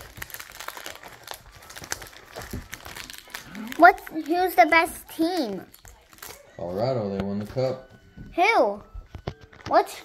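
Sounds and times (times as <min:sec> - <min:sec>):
plastic wrapper tearing and crinkling: 0:00.0 - 0:06.6
child's voice: 0:03.6 - 0:05.7, 0:08.3 - 0:08.9, 0:09.7 - 0:10.0.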